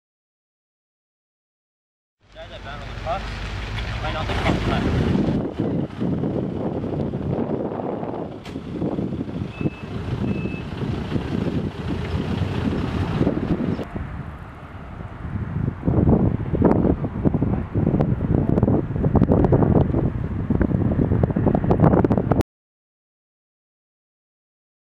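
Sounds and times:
gusty wind on microphone: 0:03.6 - 0:22.4
reversing alarm beeping: 0:09.5 - 0:10.7.

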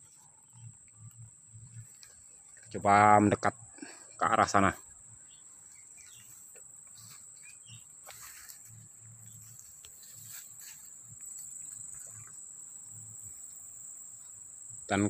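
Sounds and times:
high-pitched insect chorus: 0:00.0 - 0:15.0
soft footsteps through brush: 0:05.2 - 0:12.4
rustling in brush: 0:05.6 - 0:12.4.

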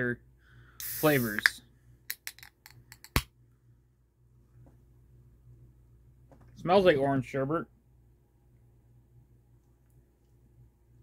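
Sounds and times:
drink can clicks and taps: 0:02.1 - 0:03.3.

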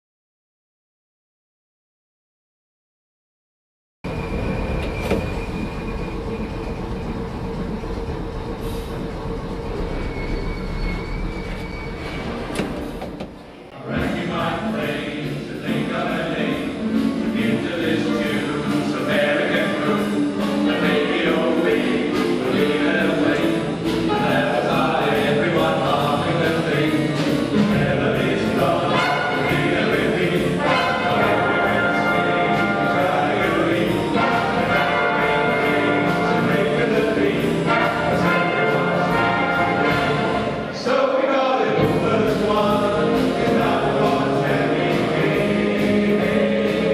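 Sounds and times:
electric tram rumbling on track: 0:04.1 - 0:13.7
jazz big band playing: 0:12.1 - 0:40.8, 0:41.7 - 0:46.9.

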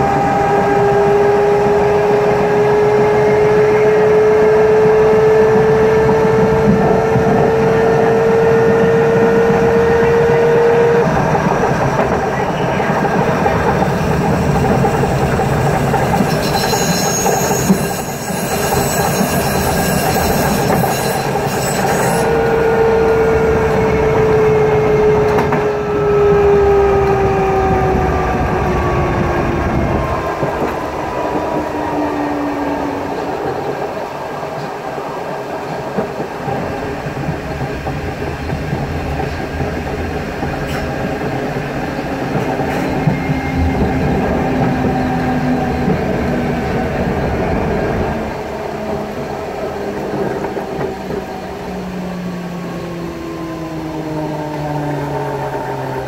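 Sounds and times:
wheels rumbling on rail: 0:00.0 - 0:56.0.

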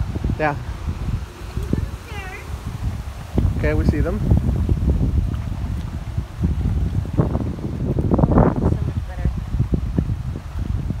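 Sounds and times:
wind buffeting microphone: 0:00.0 - 0:11.0
faint voices: 0:00.4 - 0:02.6.

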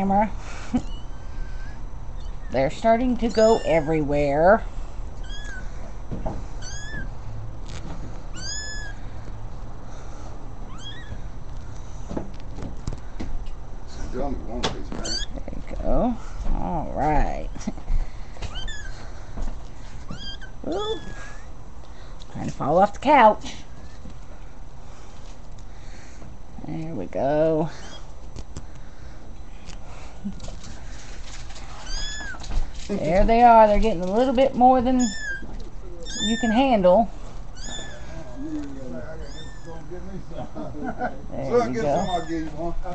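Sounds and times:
kittens mewing: 0:00.5 - 0:07.3, 0:08.1 - 0:09.4, 0:10.2 - 0:11.8, 0:14.9 - 0:15.6, 0:17.4 - 0:21.7, 0:31.6 - 0:32.7, 0:34.2 - 0:40.0, 0:41.5 - 0:42.7.

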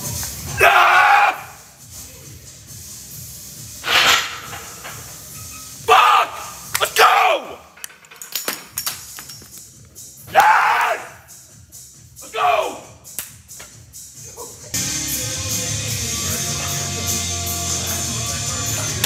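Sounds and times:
background music: 0:00.0 - 0:19.0
men yelling in excitement: 0:05.8 - 0:07.6, 0:10.3 - 0:11.2, 0:12.2 - 0:12.8.

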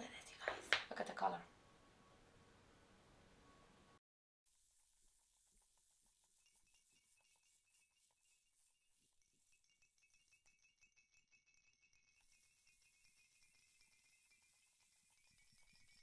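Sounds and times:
faint hiss: 0:00.0 - 0:07.5.

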